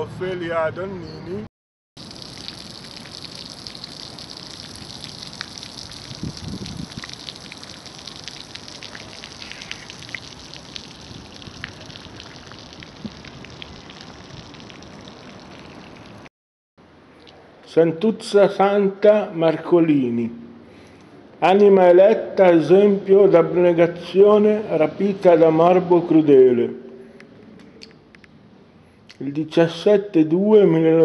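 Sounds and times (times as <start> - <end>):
fountain water splashing: 2.0 - 16.3.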